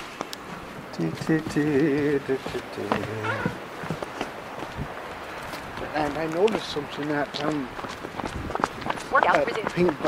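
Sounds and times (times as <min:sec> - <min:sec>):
footsteps running on a trail: 0:00.0 - 0:10.0.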